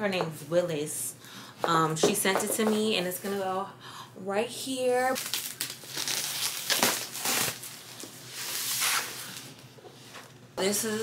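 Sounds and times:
packaging rustling: 0:05.2 - 0:09.6.

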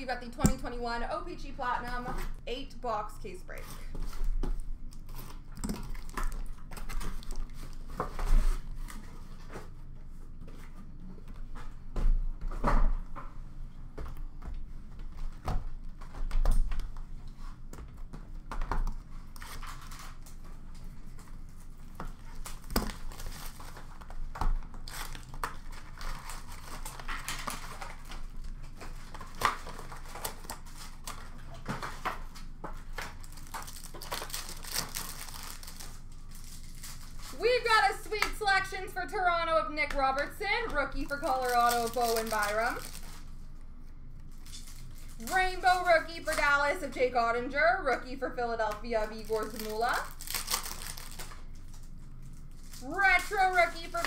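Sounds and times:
foil wrappers crinkling and tearing: 0:03.6 - 0:09.5, 0:19.1 - 0:38.7, 0:40.0 - 0:43.6, 0:44.2 - 0:47.2, 0:48.9 - 0:54.0.

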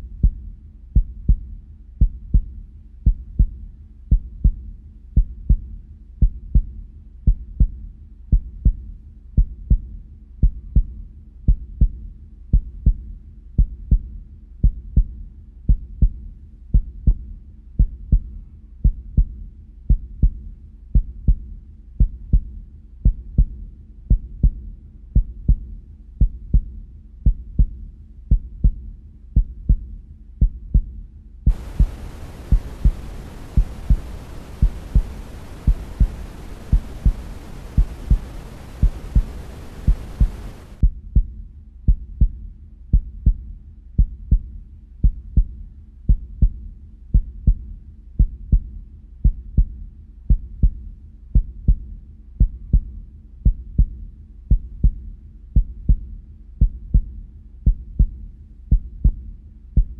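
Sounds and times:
static hiss: 0:31.5 - 0:40.8
heartbeat double thump: 0:31.5 - 0:41.3.

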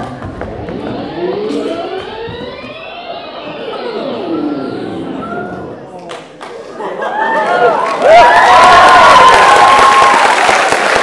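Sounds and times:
tape rewind tones sweeping: 0:00.0 - 0:06.0.

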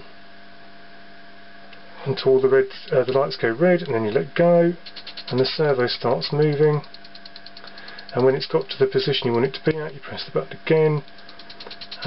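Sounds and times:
electrical hum with constant tones: 0:00.0 - 0:12.0
faint hiss: 0:02.0 - 0:10.4.

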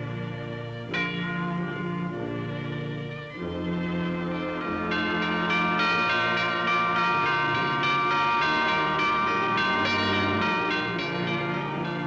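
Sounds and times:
bells pealing: 0:00.0 - 0:12.0
orchestral music: 0:00.0 - 0:12.0.

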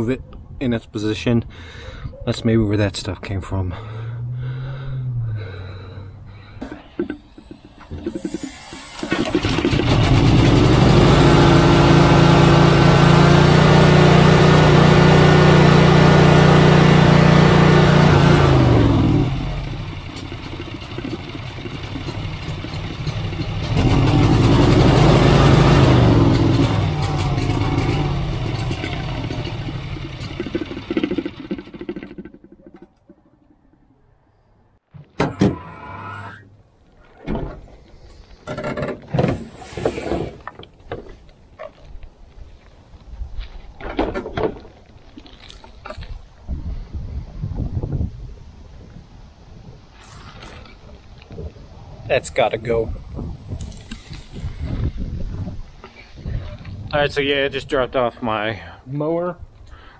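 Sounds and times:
mower engine revving: 0:07.3 - 0:32.5.

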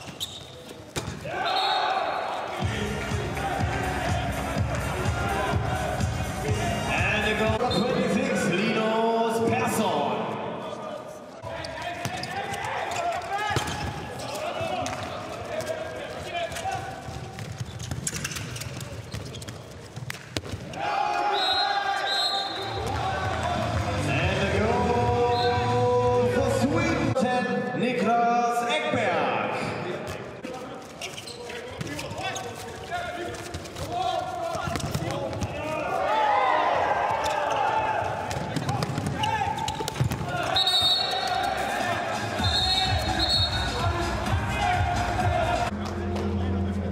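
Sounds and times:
ball bouncing on indoor court: 0:00.0 - 0:01.4, 0:11.6 - 0:20.8, 0:31.0 - 0:35.8, 0:37.1 - 0:41.5
players shouting: 0:01.2 - 0:07.8, 0:20.6 - 0:26.2, 0:33.8 - 0:45.7.

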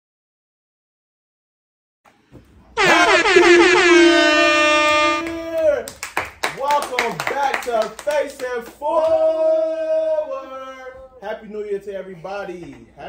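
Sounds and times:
air horn blast: 0:02.8 - 0:05.6
voices calling out: 0:02.8 - 0:05.7.

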